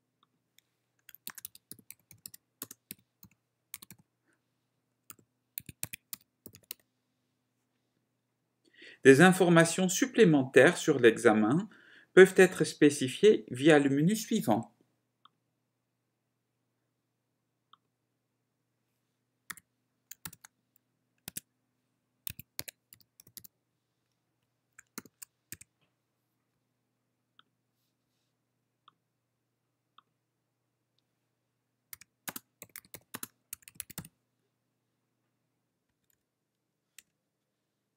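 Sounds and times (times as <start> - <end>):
keyboard typing: 1.0 - 4.1, 5.1 - 6.9, 19.5 - 20.6, 21.2 - 21.5, 22.2 - 23.6, 24.7 - 25.8, 31.9 - 34.2.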